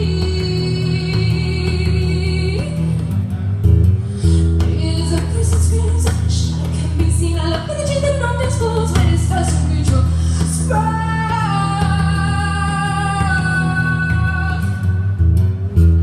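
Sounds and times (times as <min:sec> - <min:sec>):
woman singing: 0:00.0 - 0:03.2, 0:04.2 - 0:15.2
acoustic guitar playing: 0:00.0 - 0:16.0.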